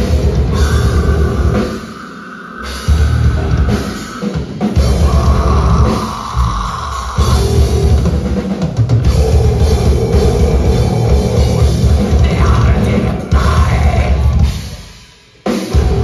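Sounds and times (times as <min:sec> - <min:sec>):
metal band playing live: 0:00.0 - 0:16.0.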